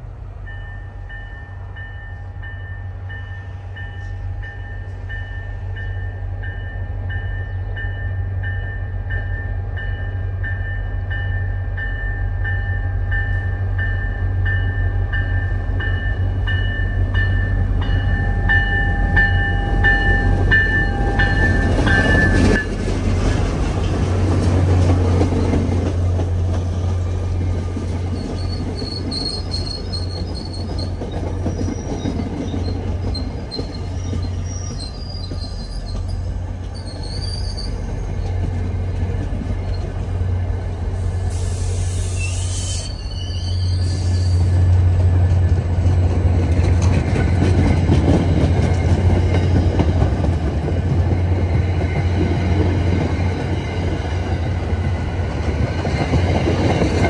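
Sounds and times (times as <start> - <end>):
diesel locomotive engine: 0.0 - 57.0
train coaches rolling by: 0.0 - 57.0
train bell ringing: 0.4 - 22.9
high wheel squeal: 28.1 - 38.4, 41.3 - 44.7.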